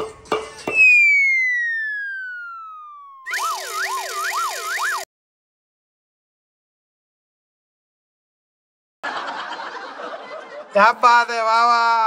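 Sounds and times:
long falling whistle: 0.7 - 5.1
wavering siren-like warble: 0.7 - 5.1.

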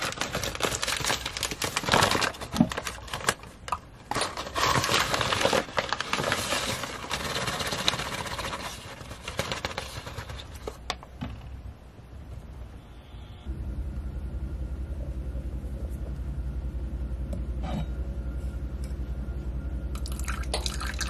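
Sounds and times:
plastic bag crinkling: 0.0 - 10.8.

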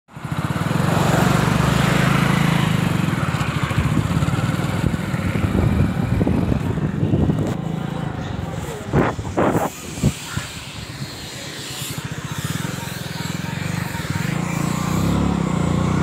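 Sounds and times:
small motorcycle engine running: 0.1 - 16.0
wind rushing over microphone: 3.7 - 11.4.

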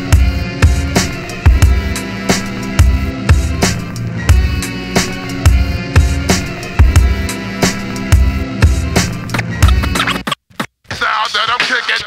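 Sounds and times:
hip-hop beat with kick and bass: 0.0 - 12.0
turntable scratching: 9.0 - 12.0.

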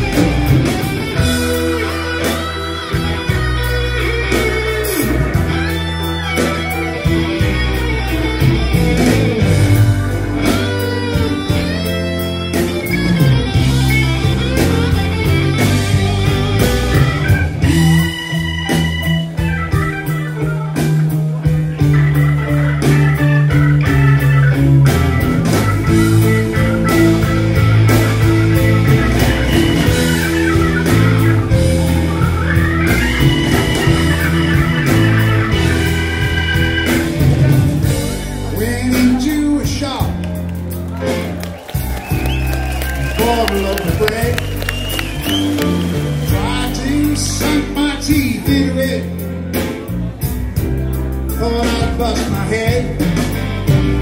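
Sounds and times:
bass guitar: 0.0 - 54.0
drums: 0.0 - 54.0
electric guitar soloing: 0.0 - 54.0
organ soloing: 0.0 - 54.0.

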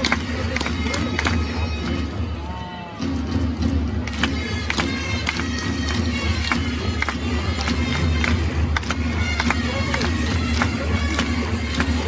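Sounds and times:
crowd clapping: 0.0 - 2.1, 3.9 - 12.0.

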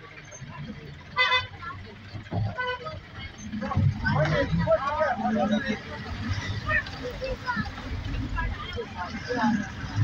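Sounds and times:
vehicle horn toots: 1.2 - 1.6.

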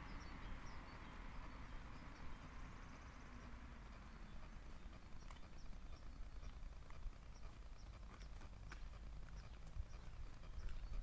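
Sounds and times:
wind rumbling on microphone: 0.0 - 11.0
footsteps on dirt: 4.2 - 11.0.

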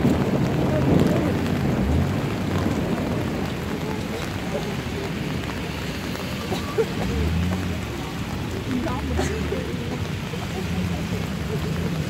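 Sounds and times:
indistinct passenger voices: 0.0 - 12.0
road noise: 0.0 - 12.0
vehicle engine hum: 0.0 - 12.0.

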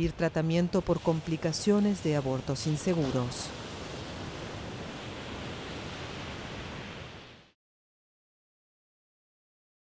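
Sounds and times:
ocean surf washing on beach: 0.0 - 7.6.

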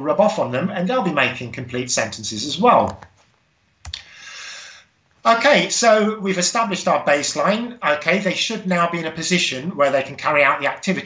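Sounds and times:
soft hiss: 0.1 - 11.0.

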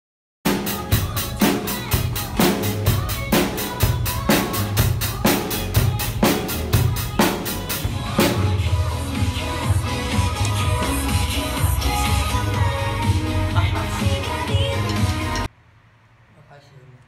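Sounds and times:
backing track music: 0.5 - 15.5
drum kit playing a groove: 0.5 - 15.5.

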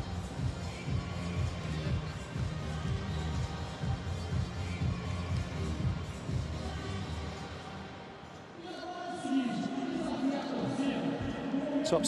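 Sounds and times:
arena crowd noise: 0.0 - 12.0
music or chanting: 0.0 - 12.0.

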